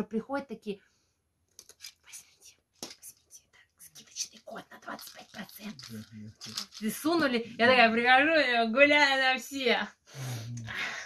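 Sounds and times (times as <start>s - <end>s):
woman whispering: 2.0s - 6.0s.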